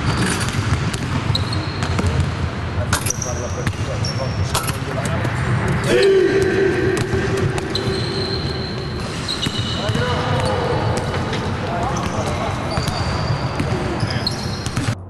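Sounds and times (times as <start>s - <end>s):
players' voices: 1.5s - 14.9s.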